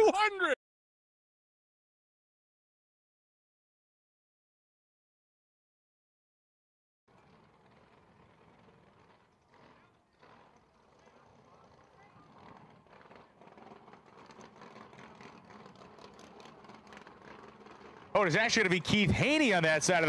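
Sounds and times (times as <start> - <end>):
faint crowd chatter: 9.5 - 13.9.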